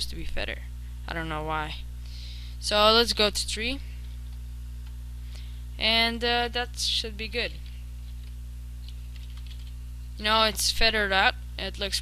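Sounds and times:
low electrical hum: 0:00.0 - 0:12.0
computer keyboard clicks: 0:08.1 - 0:09.8.

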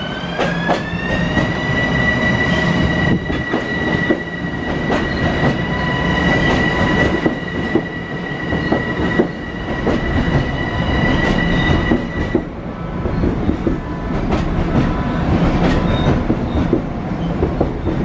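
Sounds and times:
train rumbling: 0:00.0 - 0:18.0.

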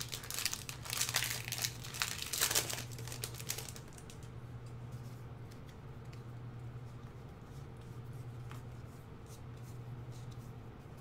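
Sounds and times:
wrapper tearing open: 0:00.0 - 0:04.2
plastic wrapper crinkling: 0:00.0 - 0:04.3.

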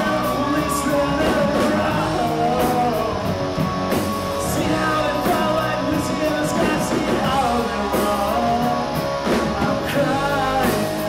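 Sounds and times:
man singing: 0:00.0 - 0:03.4, 0:04.4 - 0:11.0
bass guitar: 0:00.0 - 0:11.0
distorted electric guitars: 0:00.0 - 0:11.0
drums with cymbal hits: 0:00.0 - 0:11.0.

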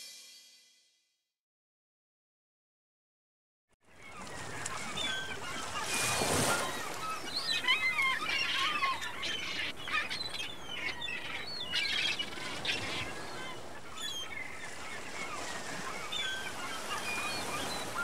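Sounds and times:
birds calling: 0:04.0 - 0:18.0.

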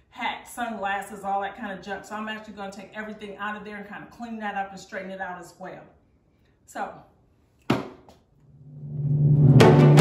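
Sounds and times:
sharp knock: 0:07.7 - 0:08.1
music: 0:08.5 - 0:10.0.

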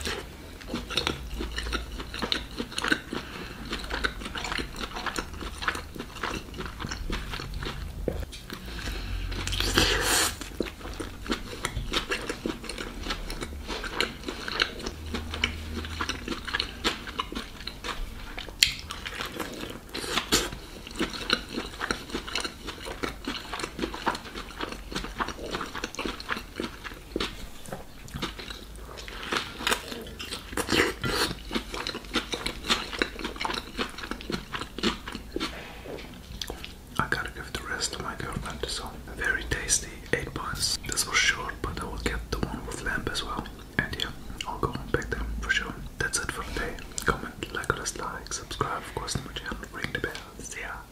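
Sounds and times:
chewing and biting food: 0:00.0 - 0:50.8
wet mouth clicks and smacks: 0:18.6 - 0:19.1.

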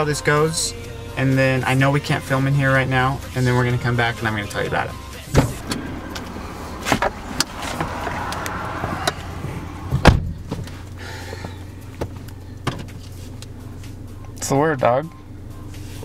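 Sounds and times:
low hum: 0:05.2 - 0:11.0
car door shutting: 0:05.3 - 0:10.8.

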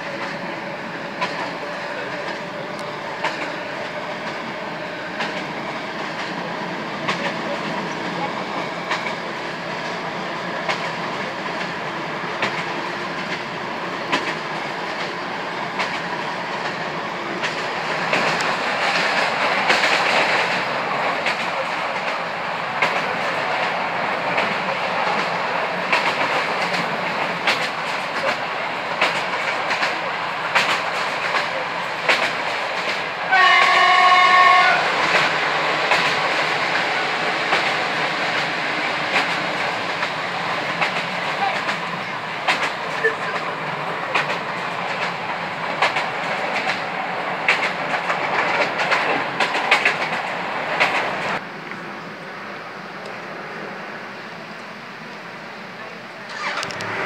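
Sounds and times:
train rolling noise: 0:00.0 - 0:57.0
wheels clicking over rail joints: 0:10.6 - 0:22.2, 0:22.8 - 0:51.4, 0:56.3 - 0:57.0
train horn: 0:33.2 - 0:35.3.

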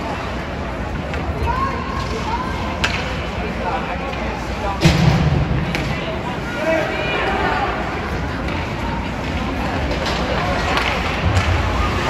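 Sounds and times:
crowd chatter: 0:00.0 - 0:12.0
hockey sticks and puck clacking: 0:00.2 - 0:06.0, 0:08.1 - 0:12.0.

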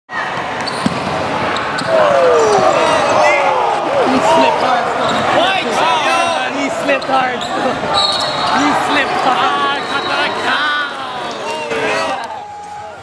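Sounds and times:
voices of players and spectators: 0:00.1 - 0:13.0
sneakers squeaking on floor: 0:00.4 - 0:03.0, 0:05.0 - 0:05.4, 0:06.8 - 0:08.8.

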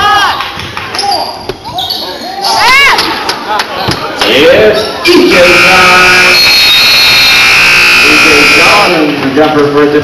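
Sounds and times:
scoreboard buzzer blast: 0:05.2 - 0:09.2.

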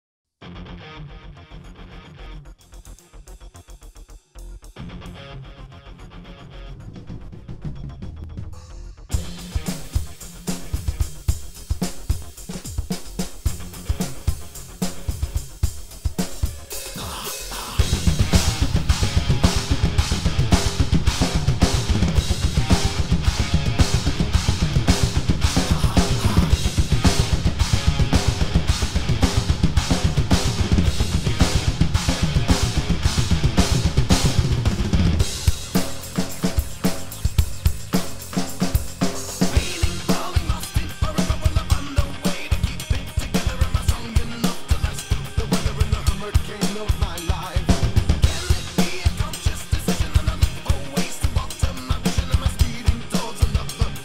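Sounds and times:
recorded metal song: 0:00.4 - 0:54.0
drum kit playing: 0:06.9 - 0:54.0
rapid bass drum strokes: 0:07.1 - 0:54.0.

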